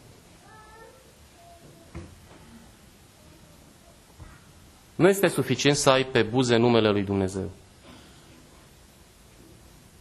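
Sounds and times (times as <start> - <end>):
faint high-pitched cry: 0.4 - 2.6.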